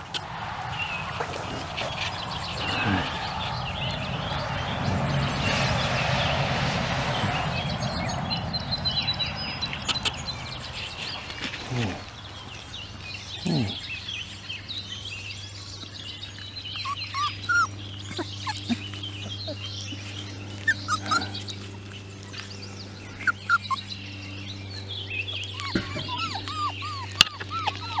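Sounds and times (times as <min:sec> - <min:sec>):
birds chirping: 0:00.0 - 0:28.0
steady low hum: 0:00.0 - 0:28.0
puppies squeaking and whimpering: 0:16.3 - 0:28.0.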